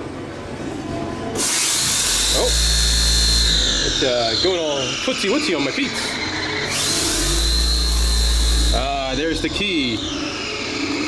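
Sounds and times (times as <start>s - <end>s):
deep steady rumble: 6.7s - 10.1s.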